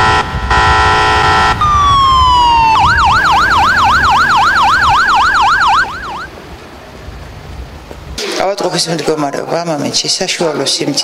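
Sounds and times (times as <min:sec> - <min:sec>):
ambulance siren: 0:00.0 - 0:06.3.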